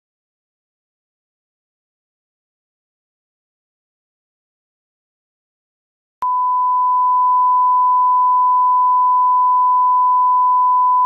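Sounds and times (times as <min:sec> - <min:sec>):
steady sine tone: 0:06.2 - 0:11.0.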